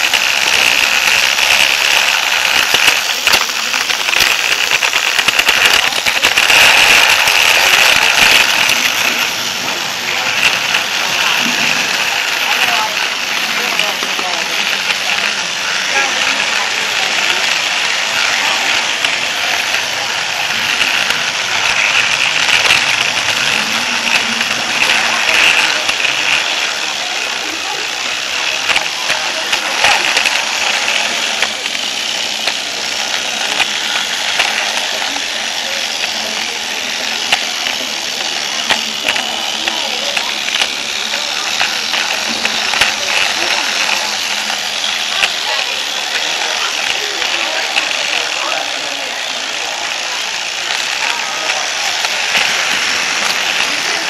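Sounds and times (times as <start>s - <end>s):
toy train clicks on track: 0.0s - 54.0s
toy train motor whirring: 0.0s - 54.0s.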